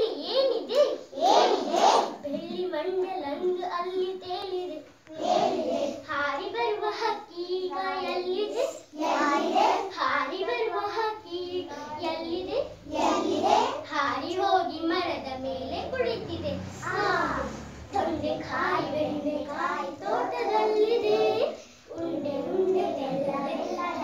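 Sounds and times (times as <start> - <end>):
girl singing unaccompanied: 0.0 - 24.0.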